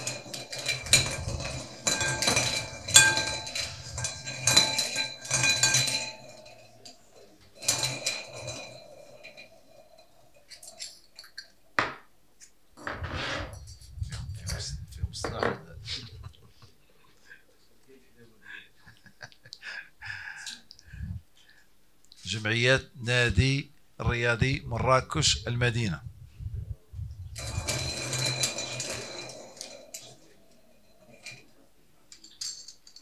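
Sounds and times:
balls rattling in glass bowl: 0.0 - 11.6, 27.0 - 33.0.

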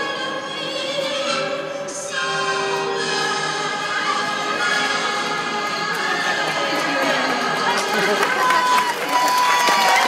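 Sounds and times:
music with singing: 0.0 - 10.0.

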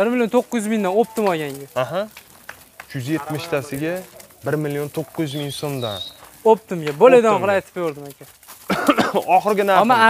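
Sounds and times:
man talking: 0.0 - 2.2, 2.9 - 8.3, 8.9 - 10.0
faint high chirp: 5.2 - 6.3.

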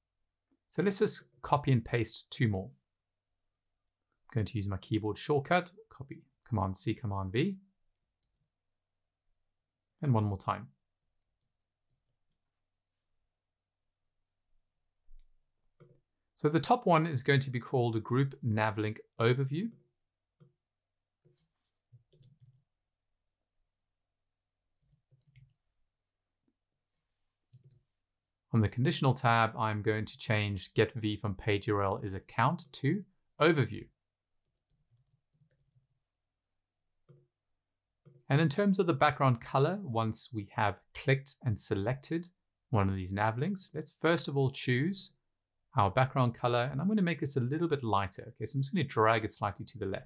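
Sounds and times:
keyboard and mouse clicks: 21.3 - 22.6, 24.8 - 25.6, 27.5 - 27.8.

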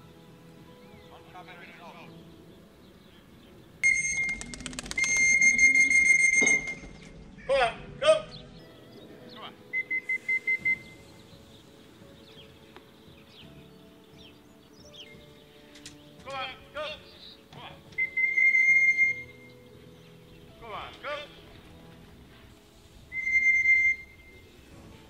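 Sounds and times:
short high beeps: 5.0 - 6.8.

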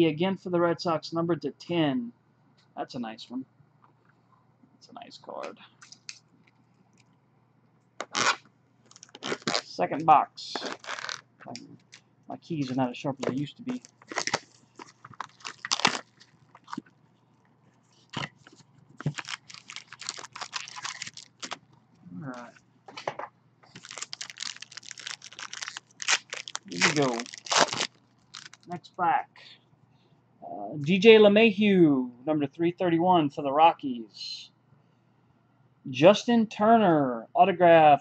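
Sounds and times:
plastic wrap crinkling and tearing: 8.0 - 9.7, 10.5 - 11.2, 13.3 - 16.9, 18.0 - 21.6, 23.7 - 28.8.

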